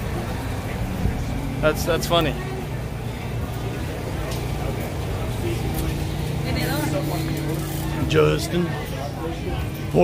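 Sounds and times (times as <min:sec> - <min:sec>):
faint voices: 0:00.0 - 0:10.0
low engine hum: 0:00.0 - 0:10.0.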